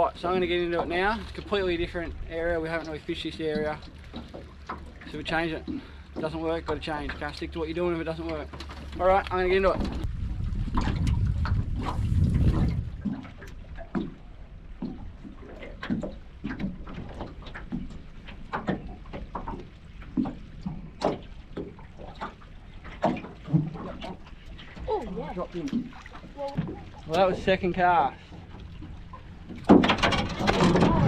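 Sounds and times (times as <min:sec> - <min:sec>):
water lapping against a metal hull: 0:00.0 - 0:31.0
low rumble: 0:09.0 - 0:15.5.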